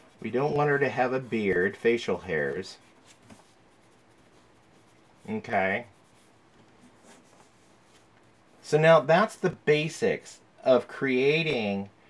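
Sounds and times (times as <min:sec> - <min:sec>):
pencil scratching on paper: 0:00.0 - 0:08.7.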